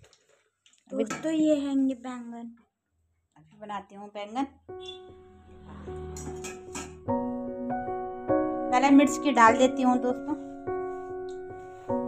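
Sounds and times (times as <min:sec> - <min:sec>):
keyboard music with piano chords: 0:04.6 - 0:12.0.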